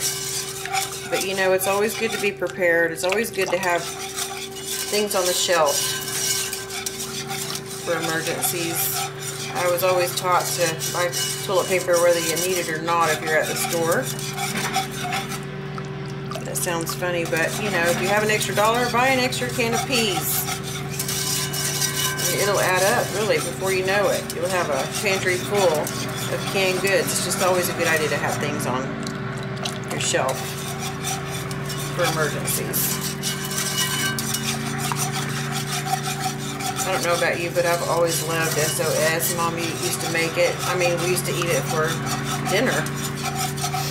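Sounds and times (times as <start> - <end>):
steady low hum: 0.0 - 43.9
whisk scraping pan: 0.0 - 43.9.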